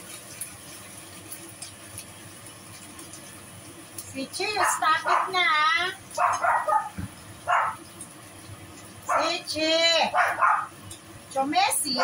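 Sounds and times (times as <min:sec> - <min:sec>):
dog barking: 0:04.6 - 0:05.5, 0:06.2 - 0:07.8, 0:09.1 - 0:09.4, 0:10.1 - 0:10.8.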